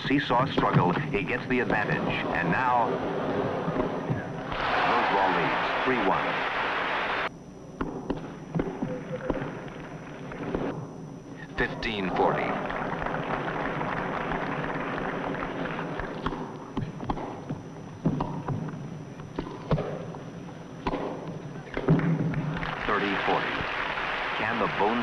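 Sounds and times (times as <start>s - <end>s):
tennis ball hit by racquets: 16.2s - 17.4s, 18.0s - 18.6s, 20.8s - 22.3s.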